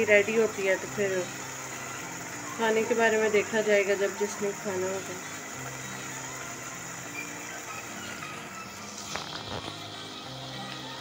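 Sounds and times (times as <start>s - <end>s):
food sizzling in oil: 0.0s - 11.0s.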